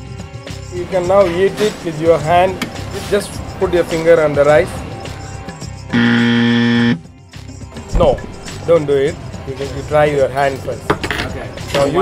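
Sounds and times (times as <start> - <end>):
harsh wrong answer buzzer: 5.9 - 7.0.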